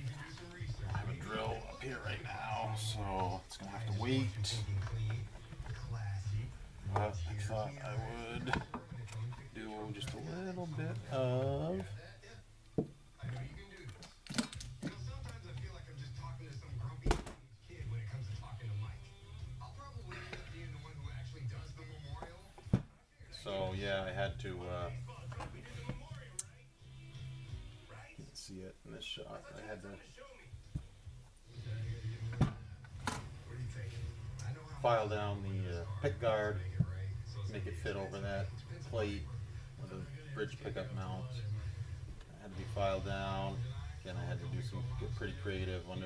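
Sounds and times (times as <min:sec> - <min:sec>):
man speaking: 0:00.0 - 0:12.2, 0:33.5 - 0:41.6, 0:42.3 - 0:46.0
faint voices: 0:00.0 - 0:12.5, 0:13.1 - 0:46.0
background music: 0:00.0 - 0:46.0.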